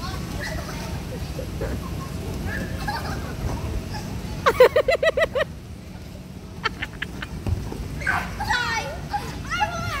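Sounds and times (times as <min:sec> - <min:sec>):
young children shouting and squealing: 0:08.0 - 0:10.0.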